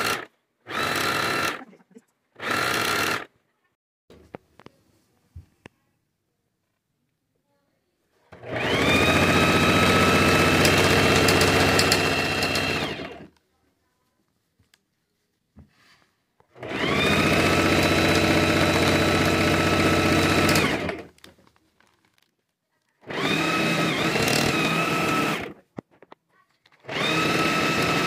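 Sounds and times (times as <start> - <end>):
sewing machine stitching: 0.0 - 1.7, 2.4 - 3.3, 8.3 - 13.3, 16.5 - 21.1, 23.0 - 25.6, 26.8 - 28.0.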